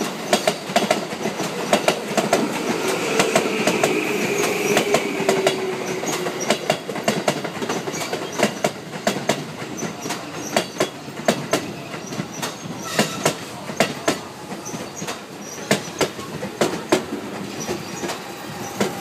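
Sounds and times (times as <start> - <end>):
train rolling rumble: 0.0 - 19.0
train wheels clacking on rail joints: 0.0 - 19.0.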